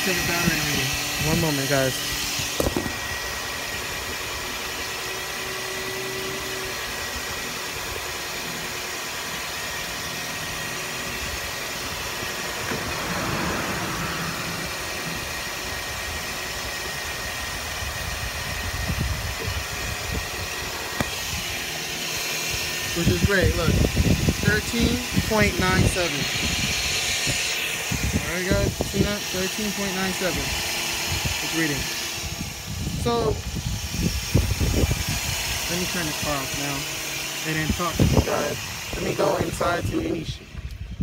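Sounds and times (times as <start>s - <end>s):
car engine idling: 10.2s - 17.2s.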